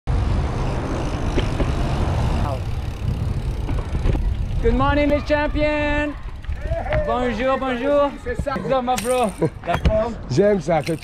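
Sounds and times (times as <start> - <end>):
road noise: 0.0 - 11.0
wind buffeting microphone: 1.4 - 8.7.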